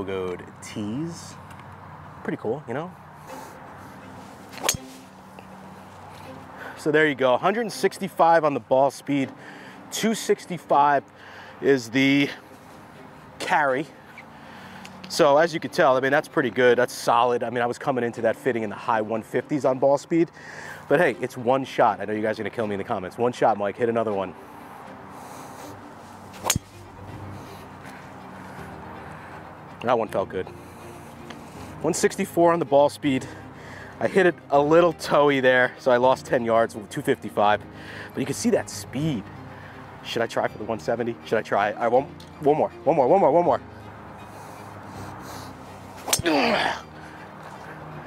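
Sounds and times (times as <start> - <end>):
golf driver striking ball: 4.6 - 5.0, 26.4 - 26.9, 46.0 - 46.4.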